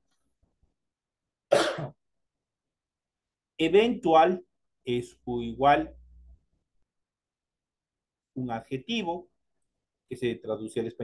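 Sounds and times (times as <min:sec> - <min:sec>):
man coughing: 0:01.5 - 0:02.0.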